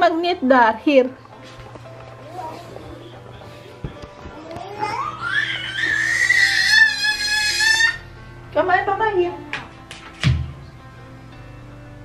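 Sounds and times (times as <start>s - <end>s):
background music: 0.0s - 12.0s
toddler squealing: 4.4s - 8.1s.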